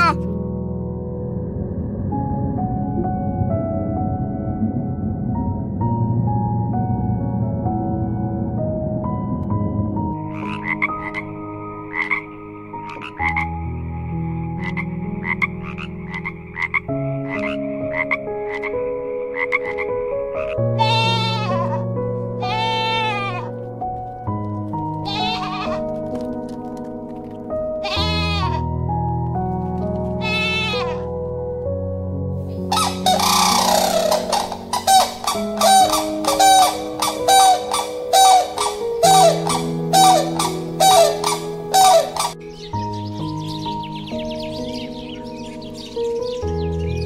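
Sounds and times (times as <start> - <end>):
soft background music: 0.0 - 47.0
goat bleating: 20.8 - 21.8, 22.4 - 23.5, 25.0 - 25.8, 27.8 - 28.6, 30.2 - 31.1
short rasping calls: 25.0 - 25.8, 32.7 - 42.4.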